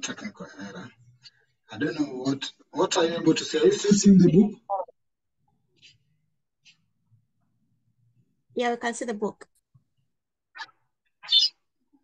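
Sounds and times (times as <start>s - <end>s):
small dog yipping: 10.6s - 11.6s.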